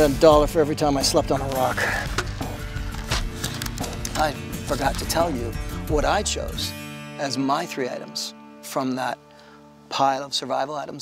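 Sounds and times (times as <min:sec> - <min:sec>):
background music: 0:00.0 - 0:11.0
twigs rustling and snapping: 0:01.4 - 0:05.5.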